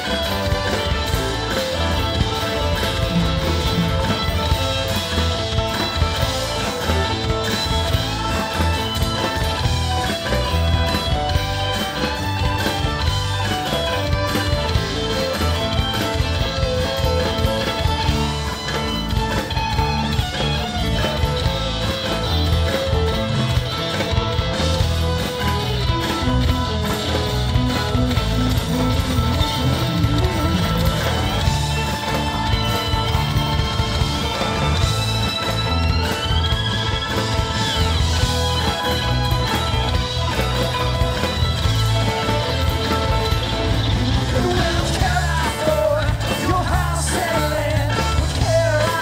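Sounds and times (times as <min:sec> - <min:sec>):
bass guitar: 0:00.0 - 0:49.0
drums: 0:00.0 - 0:49.0
fiddle playing a fast tune: 0:00.0 - 0:49.0
mandolin: 0:00.0 - 0:49.0
rock band playing: 0:00.0 - 0:49.0.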